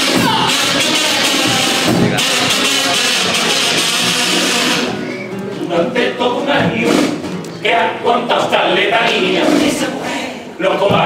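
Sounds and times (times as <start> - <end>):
kazoos buzzing a melody: 0.0 - 5.1
drums: 0.0 - 7.6, 9.1 - 10.0
guitar: 0.0 - 10.2.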